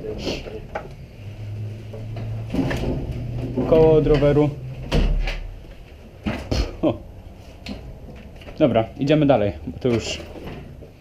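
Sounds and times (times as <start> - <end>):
junk knocking and clattering: 1.9 - 6.8.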